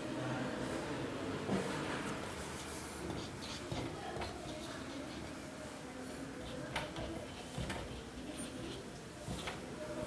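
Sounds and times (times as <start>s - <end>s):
marker writing on whiteboard: 2.3s - 5.6s, 6.2s - 10.0s
marker tapping: 3.1s - 4.8s, 6.7s - 8.1s.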